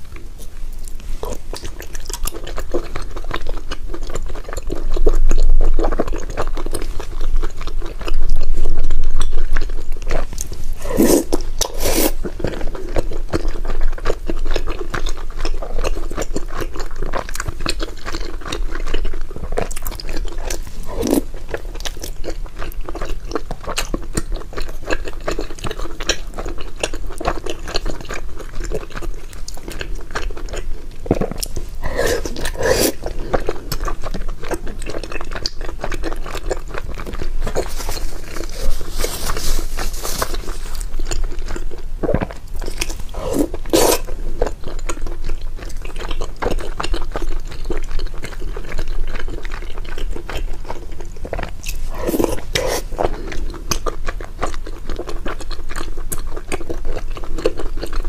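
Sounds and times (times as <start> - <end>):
close chewing with mouth clicks: 0.0 - 58.0.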